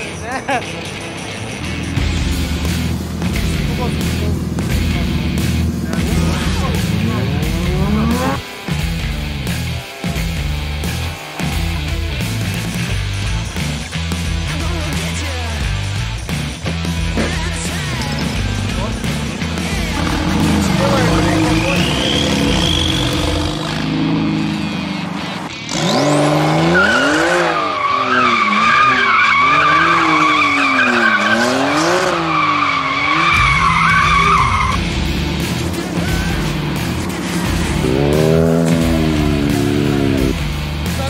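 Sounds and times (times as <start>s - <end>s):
car engine revving: 0.0s - 41.0s
tyres squealing: 19.0s - 25.5s, 26.1s - 34.8s.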